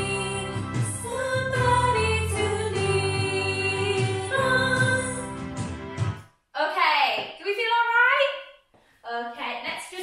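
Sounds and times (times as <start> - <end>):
sung music: 0.0 - 6.2.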